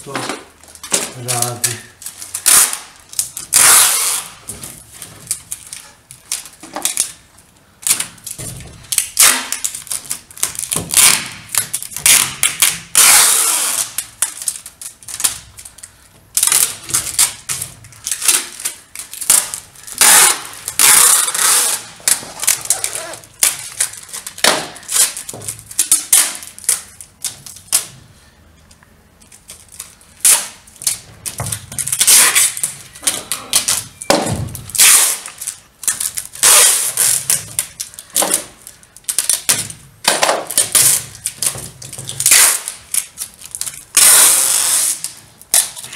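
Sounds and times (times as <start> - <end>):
adhesive tape ripping off roll: 0.7 - 28.0, 29.3 - 45.9.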